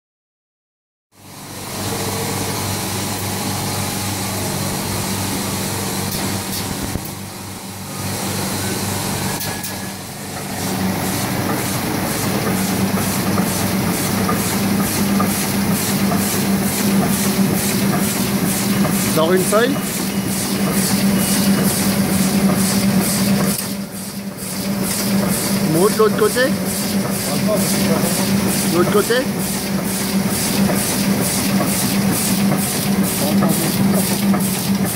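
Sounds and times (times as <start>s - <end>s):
printing press hum: 1.2s - 34.9s.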